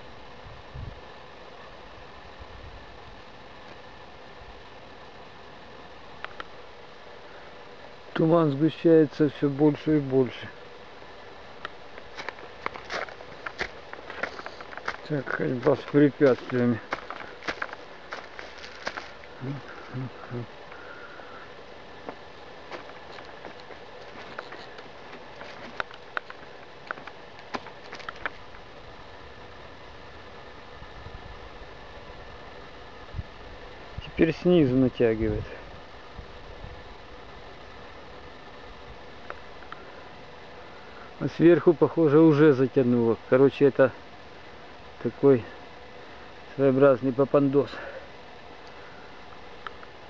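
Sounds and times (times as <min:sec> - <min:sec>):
steady outdoor hiss: 0:00.0 - 0:50.0
faint small ticks: 0:06.2 - 0:06.5, 0:39.2 - 0:39.9
footsteps on dry leaves and stones: 0:12.0 - 0:20.0, 0:22.0 - 0:28.5.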